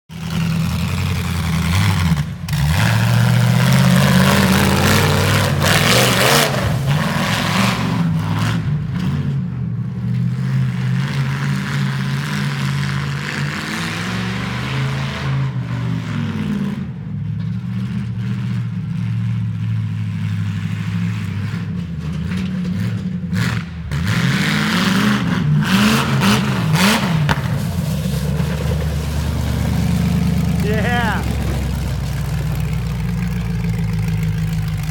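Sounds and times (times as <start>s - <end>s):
car engine revving: 0.1s - 9.4s, 22.7s - 34.9s.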